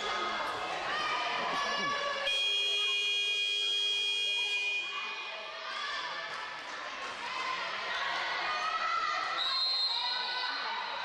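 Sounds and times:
players and spectators voices: 0.0s - 11.0s.

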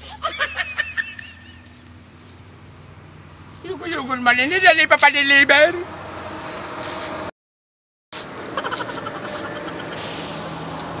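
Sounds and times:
vehicle engine humming: 0.0s - 7.3s, 8.2s - 11.0s
hiss: 9.8s - 10.8s.

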